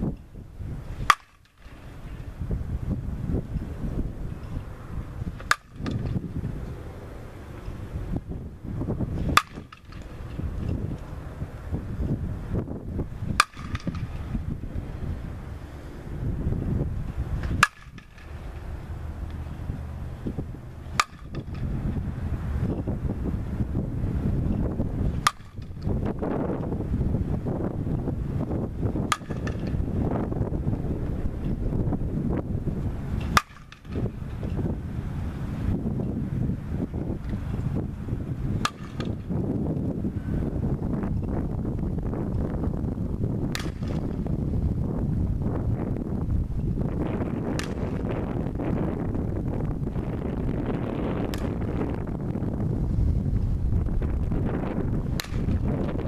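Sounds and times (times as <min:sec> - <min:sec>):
wind noise on microphone: 0:00.0 - 0:56.0
bat hitting ball: 0:01.0 - 0:01.9, 0:05.3 - 0:06.4, 0:09.1 - 0:11.0, 0:13.3 - 0:14.6, 0:17.4 - 0:18.6, 0:20.3 - 0:22.0, 0:24.5 - 0:26.7, 0:28.5 - 0:30.4, 0:33.1 - 0:34.7, 0:38.5 - 0:39.4, 0:43.4 - 0:44.3, 0:47.4 - 0:48.1, 0:50.0 - 0:51.8, 0:54.6 - 0:55.9.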